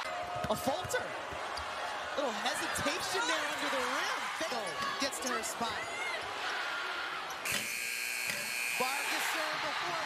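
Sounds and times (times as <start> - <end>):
arena buzzer: 7.4 - 9.6.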